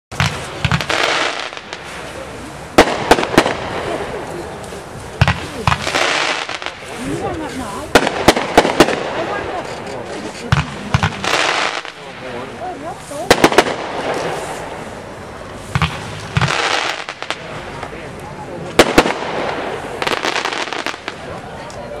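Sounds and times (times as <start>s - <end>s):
fireworks crackling: 0.1s - 22.0s
fireworks shells bursting: 13.2s - 14.8s.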